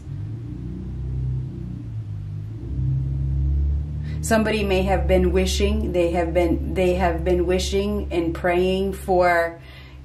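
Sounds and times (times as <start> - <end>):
low ambient drone music: 0.0 - 5.4.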